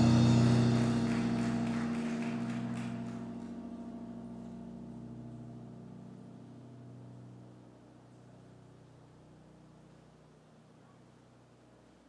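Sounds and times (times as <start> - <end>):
keyboard chord ringing: 0.0 - 9.7.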